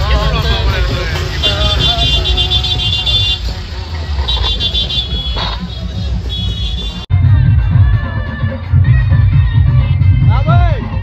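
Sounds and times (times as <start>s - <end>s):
crowd voices: 0.0s - 9.0s
procession music with drumming: 0.0s - 11.0s.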